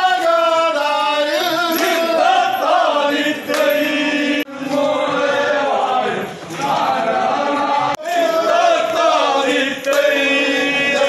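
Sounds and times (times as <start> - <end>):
men singing in chorus: 0.0 - 11.0.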